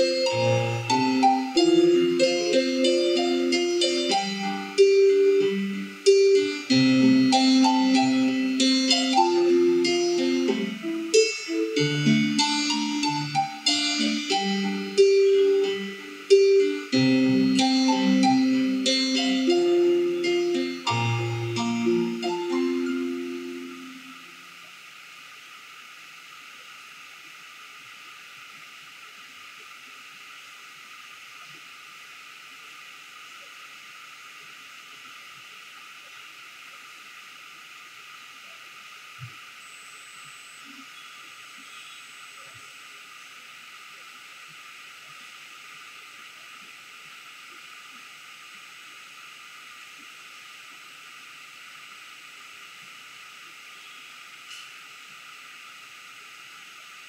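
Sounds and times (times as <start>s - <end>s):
quiet background hiss: 0.0s - 57.0s.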